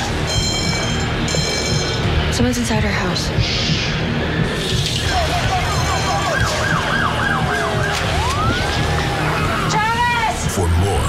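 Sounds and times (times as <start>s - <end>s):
emergency siren wailing: 5.0s - 10.2s.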